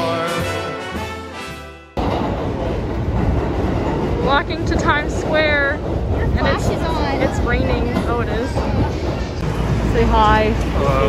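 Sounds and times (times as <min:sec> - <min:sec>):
busy city street noise: 0:02.0 - 0:11.0
deep irregular rumble: 0:02.0 - 0:11.0.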